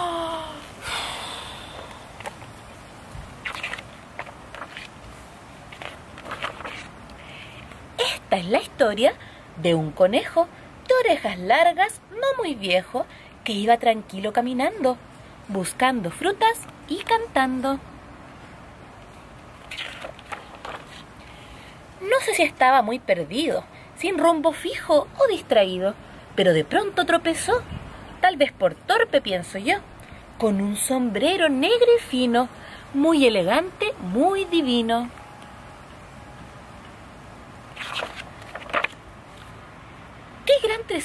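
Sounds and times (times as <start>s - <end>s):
faint background noise: 0.0s - 41.0s
puff of breath: 0.8s - 2.2s
book pages handled: 3.2s - 7.8s, 19.6s - 21.1s, 37.7s - 39.6s.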